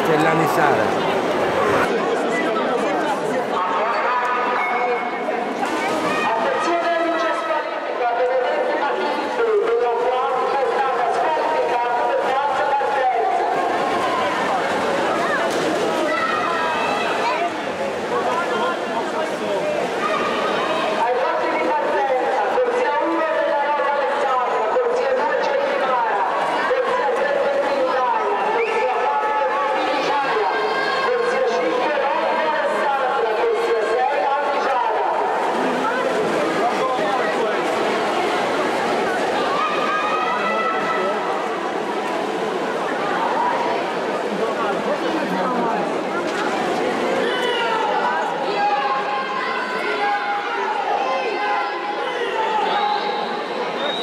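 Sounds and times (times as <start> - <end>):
crowd babble in pool hall: 0.0 - 54.0.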